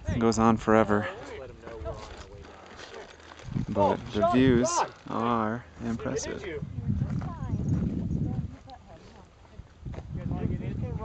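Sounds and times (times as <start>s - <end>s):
wind buffeting microphone: 3.4s - 11.0s.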